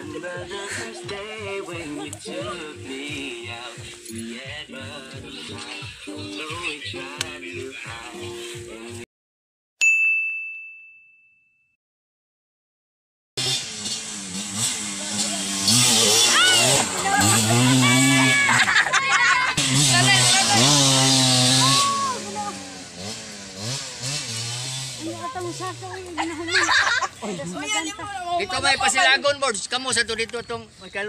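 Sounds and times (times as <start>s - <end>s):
bell-like ding: 9.8s - 11.8s
dirt bike engine revving: 13.4s - 29.2s.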